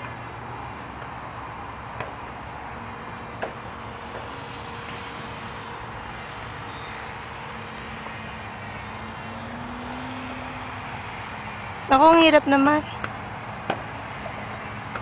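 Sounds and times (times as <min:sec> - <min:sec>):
model plane electric motor whining: 0:00.0 - 0:15.0.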